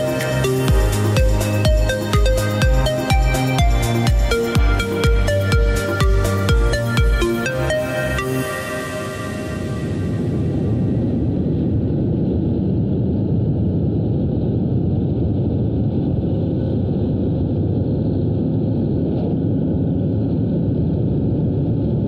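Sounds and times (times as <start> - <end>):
road and wind noise: 0.0 - 22.0.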